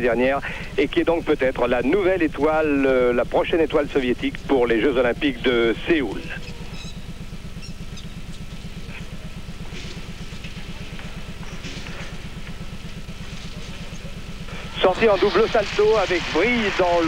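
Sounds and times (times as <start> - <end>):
low electrical hum and buzz: 0.0 - 17.0.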